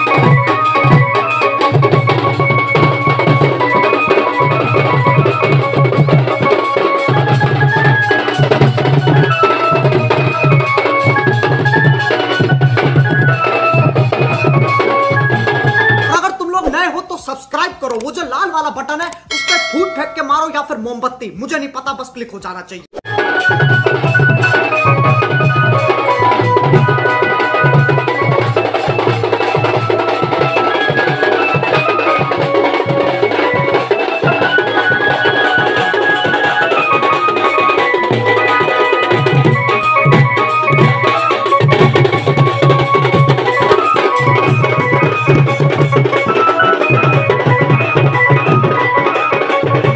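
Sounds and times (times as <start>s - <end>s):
drums beating steady rhythm: 0.0s - 22.0s, 23.0s - 49.9s
melody of held notes: 19.3s - 20.8s, 23.3s - 49.9s.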